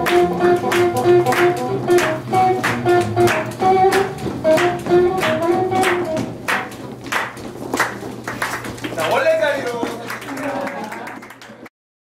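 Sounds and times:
sharp hand claps: 0:00.0 - 0:11.7.

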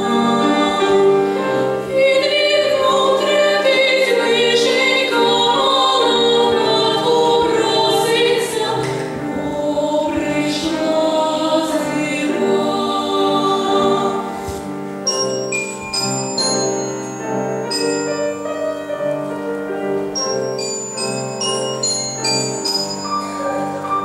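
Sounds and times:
girls' choir singing in harmony: 0:00.0 - 0:14.7.

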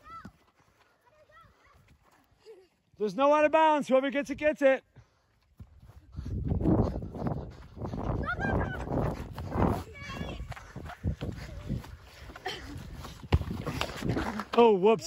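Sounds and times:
wind noise on microphone: 0:05.6 - 0:14.4.

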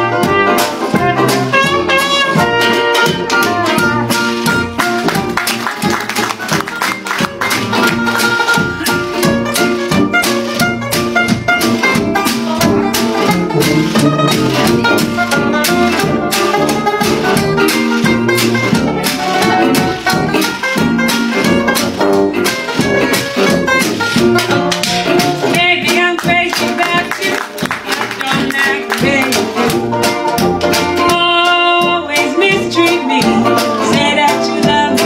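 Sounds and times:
jazz band playing: 0:00.0 - 0:35.0.

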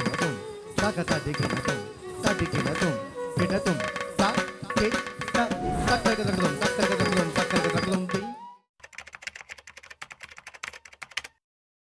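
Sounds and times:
music: 0:00.0 - 0:08.7
rapid keyboard typing clicks: 0:08.8 - 0:11.4.

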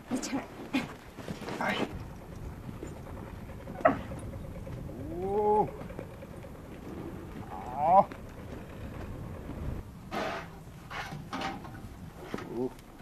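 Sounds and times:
camels calling: 0:00.8 - 0:12.8.

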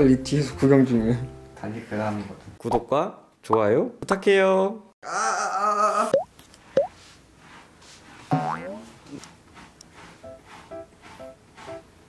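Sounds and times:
pitched voice-like cry: 0:05.0 - 0:06.2
cartoon boing effects: 0:08.3 - 0:08.8.

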